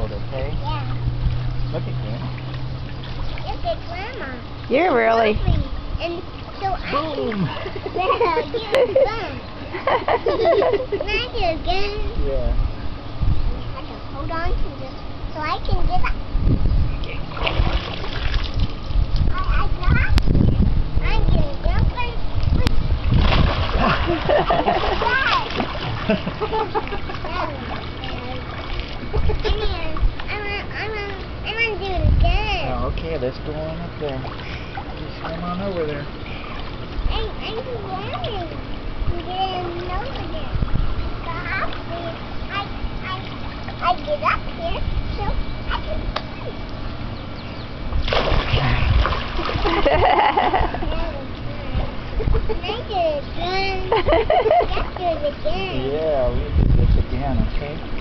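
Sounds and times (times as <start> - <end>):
water sloshing: 0.0 - 12.2, 16.9 - 56.7
child splashing into pool water: 17.3 - 18.8, 23.0 - 29.4, 48.0 - 50.6.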